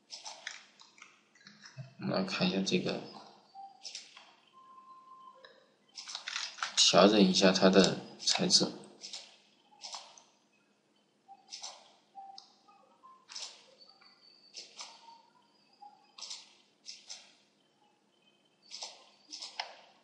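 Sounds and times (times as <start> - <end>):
computer mouse clicking: 0.1 - 1.8, 3.8 - 4.3, 5.4 - 6.8, 7.7 - 10.3, 11.5 - 12.5, 13.3 - 15.2, 16.1 - 17.4, 18.7 - 19.8.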